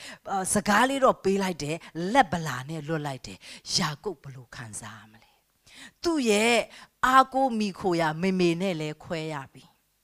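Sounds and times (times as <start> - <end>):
woman speaking into a microphone: 0.2 - 5.3, 6.0 - 9.8.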